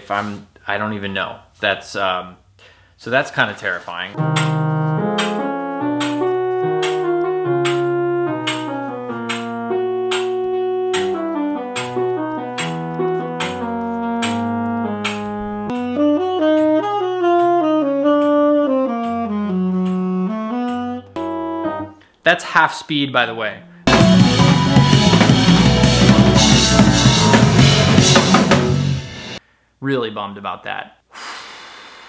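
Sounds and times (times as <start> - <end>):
stepping bass line: 4.2 - 17.2, 23.9 - 29.4
steady beat: 4.2 - 20.9, 23.9 - 29.4
tenor saxophone playing jazz: 4.2 - 22.0, 23.9 - 29.4.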